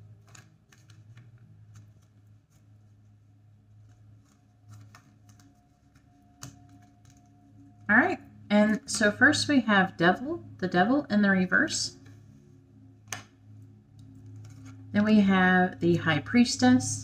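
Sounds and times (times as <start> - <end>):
cards clicking and tapping: 0.0 - 3.0, 3.7 - 7.9, 13.1 - 13.4, 14.0 - 14.9
low steady hum: 0.0 - 17.0.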